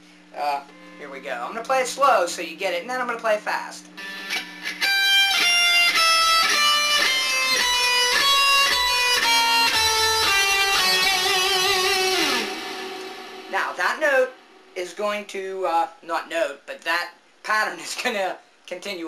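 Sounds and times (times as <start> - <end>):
electric guitar single notes: 0.6 - 1.6, 3.9 - 15.0.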